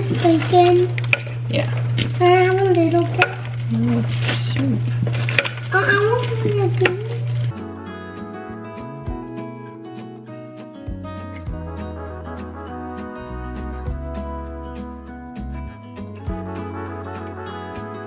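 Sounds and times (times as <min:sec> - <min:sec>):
steady low hum: 0:00.0 - 0:09.6
background music with held notes: 0:05.3 - 0:18.0
person talking: 0:05.7 - 0:07.6.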